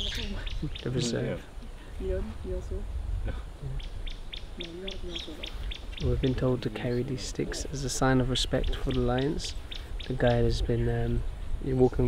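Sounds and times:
bird chirping: 0.0 - 1.4, 3.6 - 10.8
low rumble: 5.3 - 9.0.

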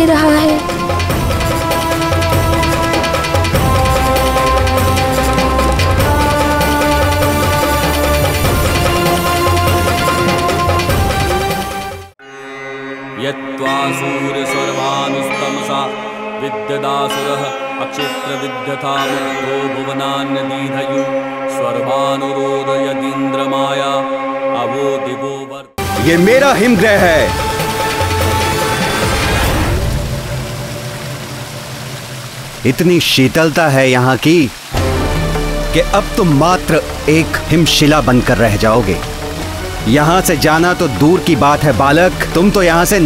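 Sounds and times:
voice chanting a mantra: 13.1 - 27.3.

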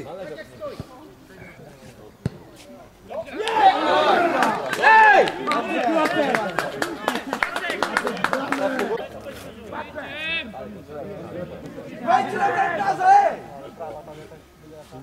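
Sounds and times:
men shouting: 3.2 - 6.4, 9.7 - 10.6, 11.9 - 13.5.

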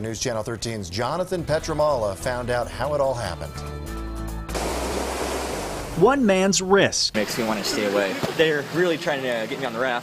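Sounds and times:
news theme music: 4.1 - 7.4.

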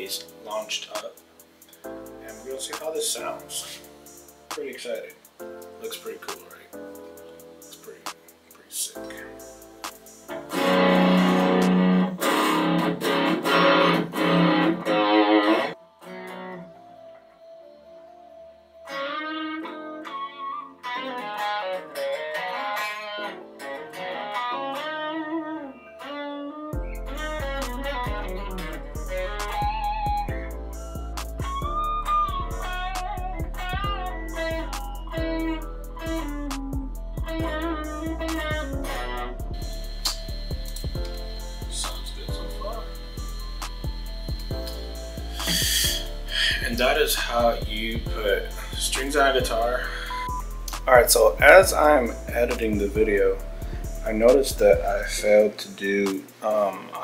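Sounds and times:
electric guitar playing: 9.1 - 17.8, 18.6 - 55.4.

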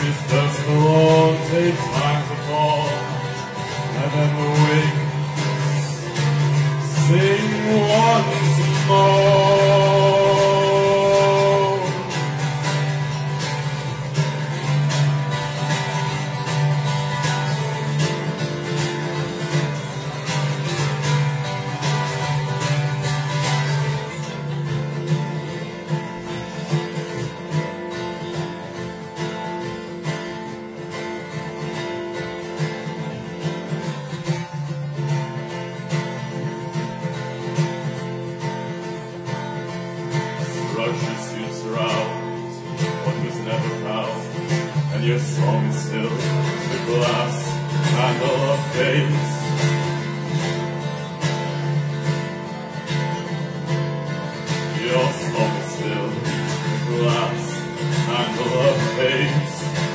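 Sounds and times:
acoustic guitar strumming: 0.0 - 59.9.

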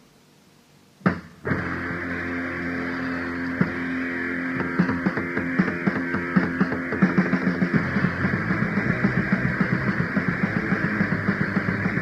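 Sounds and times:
tape hiss: 0.0 - 12.0
drum hits: 1.0 - 2.1, 4.6 - 12.0
electric guitar chord ringing: 1.4 - 12.0.

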